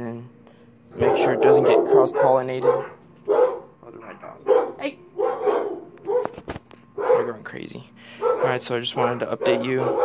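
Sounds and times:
dog barking: 1.0 - 3.7, 4.4 - 6.4, 7.0 - 7.4, 8.2 - 10.0.

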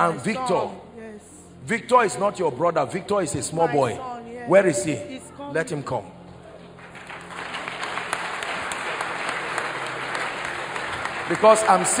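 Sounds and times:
congregation applauding: 6.6 - 12.0.

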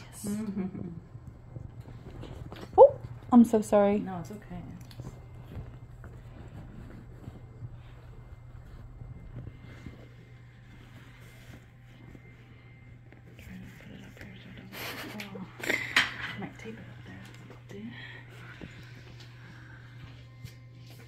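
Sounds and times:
steady low hum: 0.0 - 21.0
phone rustling against leather: 5.1 - 13.4.

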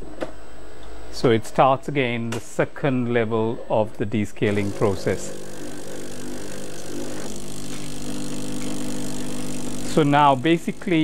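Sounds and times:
coffee machine pump humming: 4.4 - 11.0.

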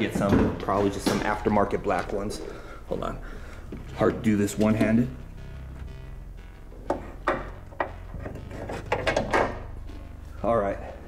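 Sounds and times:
low hum: 0.0 - 11.0
soft background music: 0.0 - 11.0.

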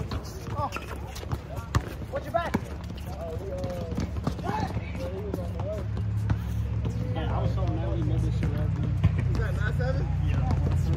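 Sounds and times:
basketball bouncing: 0.0 - 10.9
players calling out: 0.0 - 10.9
sneakers on court: 0.0 - 10.9.

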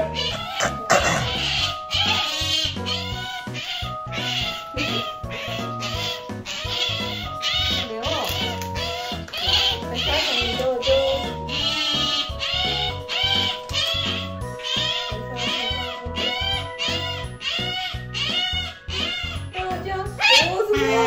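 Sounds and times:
otter squeaking: 0.0 - 21.0.

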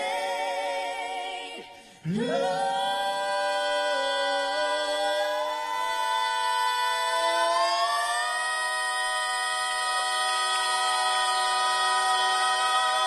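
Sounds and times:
gospel vocal harmony chord: 0.0 - 13.0.

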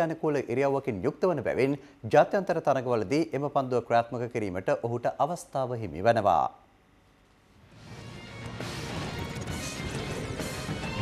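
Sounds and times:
sports theme music: 7.7 - 11.0.

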